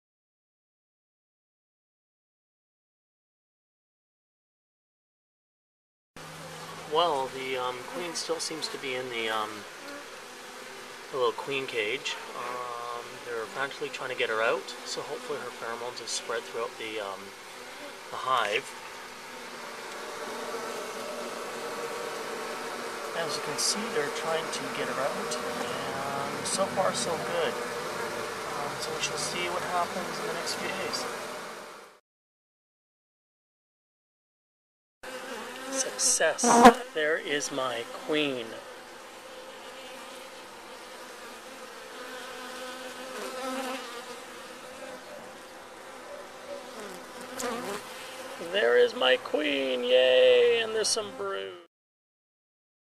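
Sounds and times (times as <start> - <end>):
honeybees buzzing: 6.2 - 32.0, 35.1 - 51.6.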